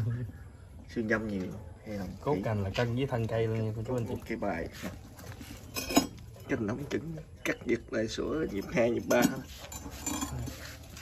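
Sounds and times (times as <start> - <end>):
ceramic pot scraping on metal: 3.8 - 6.9, 8.3 - 11.0.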